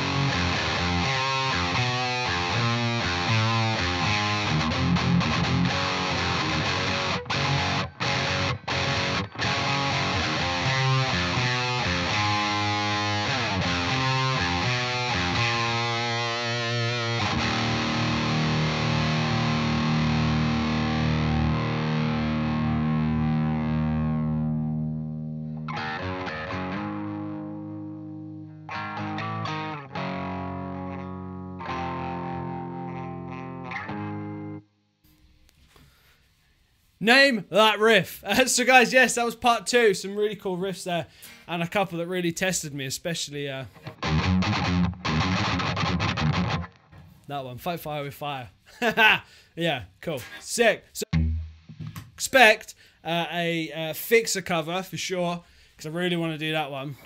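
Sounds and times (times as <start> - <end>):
distorted electric guitar riff: 0.0 - 34.6, 43.7 - 47.2, 50.0 - 52.2.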